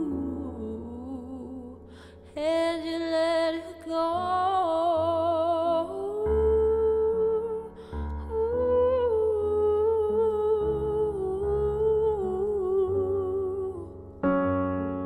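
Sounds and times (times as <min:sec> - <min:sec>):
woman singing wordless melody: 0:00.0 - 0:14.2
digital piano chords: 0:00.0 - 0:15.0.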